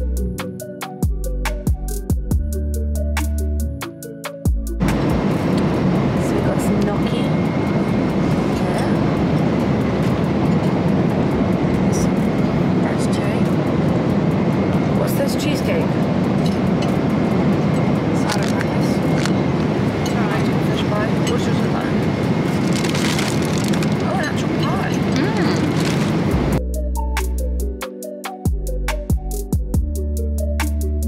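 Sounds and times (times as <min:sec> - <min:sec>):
background music: 0:00.0 - 0:22.5, 0:26.2 - 0:31.0
airliner cabin rumble: 0:04.8 - 0:26.6.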